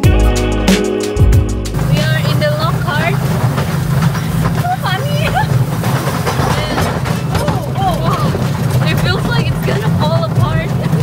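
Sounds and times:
rail trolley rumbling: 1.2 - 11.0
women calling out and laughing: 4.6 - 5.6, 7.4 - 10.9.

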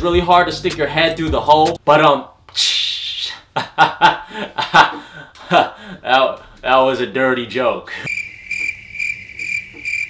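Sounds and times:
laughter: 3.6 - 5.8
cricket chirping: 8.1 - 10.0.

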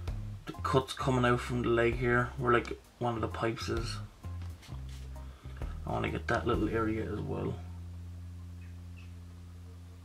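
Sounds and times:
low electrical hum: 0.0 - 10.0
faint high chirps: 8.4 - 10.0.

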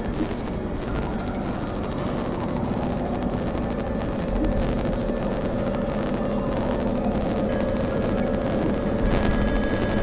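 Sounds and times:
high whistling tones: 0.0 - 3.6
synthesizer drone: 0.0 - 10.0.

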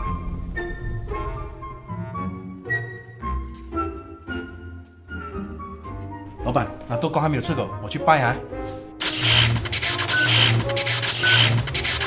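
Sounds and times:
electric crackling buzz: 9.0 - 12.0.

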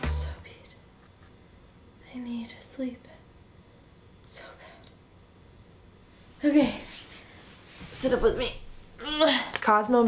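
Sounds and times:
woman whispering: 0.3 - 0.8, 2.0 - 3.2, 4.3 - 4.9.

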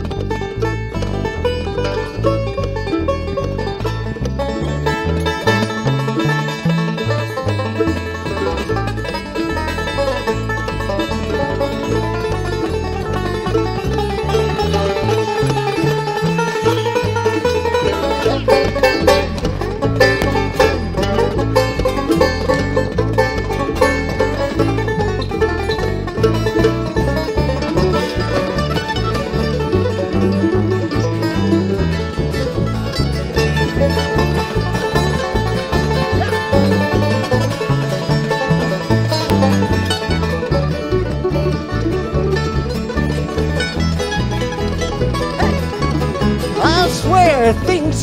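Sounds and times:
banjo picking: 0.0 - 48.0
bass notes: 0.0 - 48.0
strummed acoustic guitar: 0.0 - 48.0.

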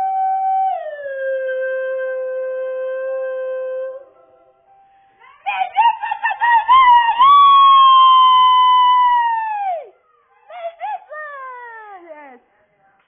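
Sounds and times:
high-pitched howl: 5.2 - 11.0.

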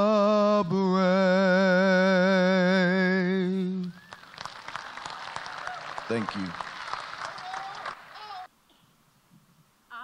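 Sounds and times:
crowd applauding: 3.9 - 8.5.

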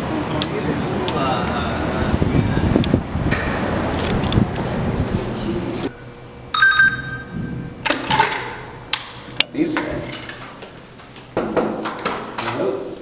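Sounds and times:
city street noise: 0.0 - 7.9
wind buffeting microphone: 1.8 - 5.8
electronic chime: 6.5 - 7.7.

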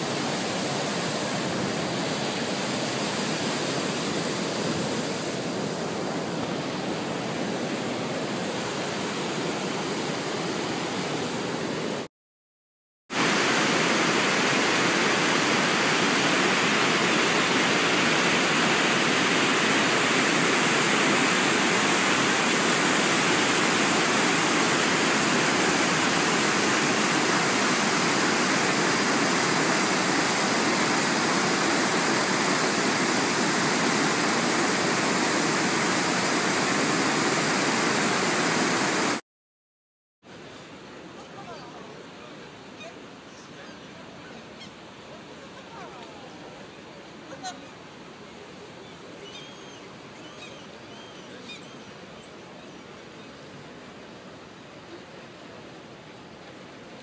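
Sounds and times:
whitewater rushing: 0.0 - 12.1, 13.1 - 39.2.

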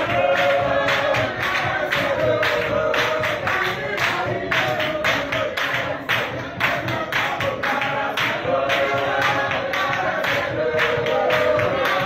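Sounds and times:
congregation singing: 0.0 - 12.0
rhythmic hand clapping: 0.0 - 12.0.

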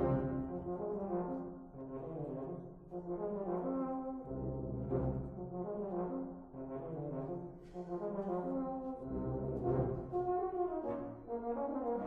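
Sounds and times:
brass band playing chords: 0.0 - 1.4.

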